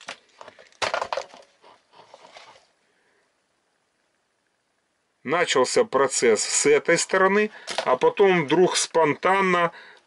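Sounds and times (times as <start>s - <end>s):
rustling and clicking handling noise: 0.0s - 2.8s, 7.6s - 8.2s.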